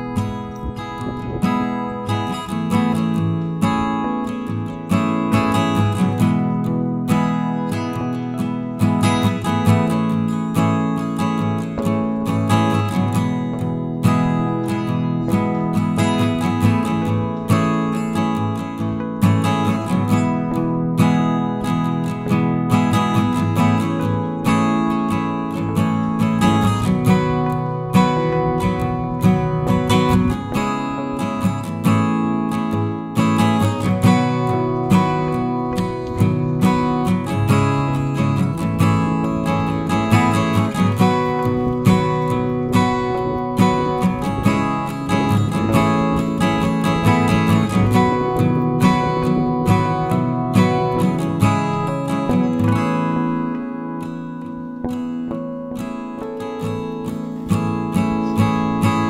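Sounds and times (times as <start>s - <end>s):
acoustic guitar music: 0.0s - 59.0s.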